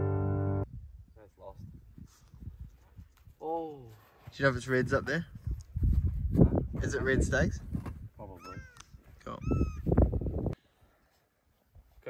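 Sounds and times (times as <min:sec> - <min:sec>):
wind rumbling on microphone: 0:00.6 - 0:03.4, 0:04.6 - 0:10.6.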